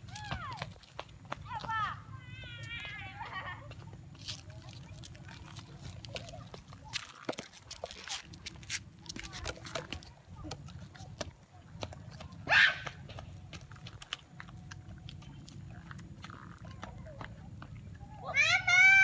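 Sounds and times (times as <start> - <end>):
child yelling: 18.2 - 19.0.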